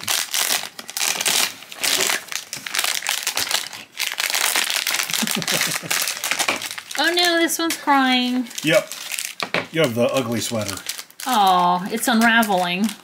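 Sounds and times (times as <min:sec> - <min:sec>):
foil bag crinkling: 0:00.0 - 0:13.0.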